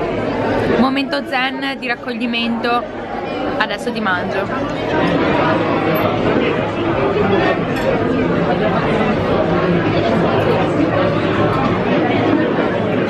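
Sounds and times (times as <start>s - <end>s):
babble of diners' voices: 0.0s - 13.0s.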